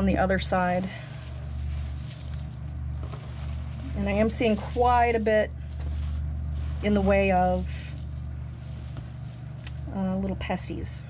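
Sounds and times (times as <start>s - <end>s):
steady low hum: 0.0s - 11.0s
hands rummaging through damp bedding: 0.4s - 10.4s.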